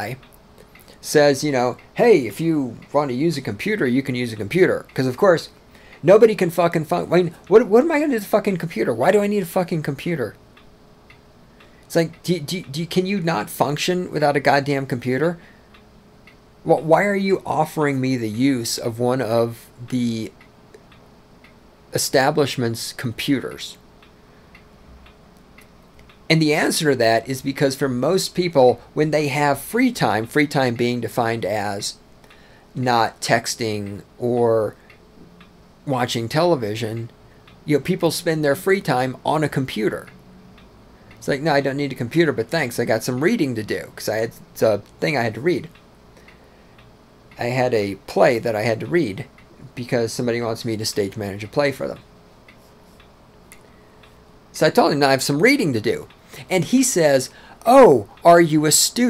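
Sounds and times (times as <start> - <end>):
faint regular ticking: 0.0 - 59.0
low room noise: 0.0 - 59.0.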